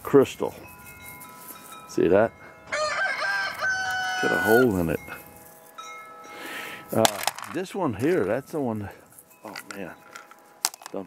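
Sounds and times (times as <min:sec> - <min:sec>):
wind chimes ringing: 0:00.0 - 0:11.0.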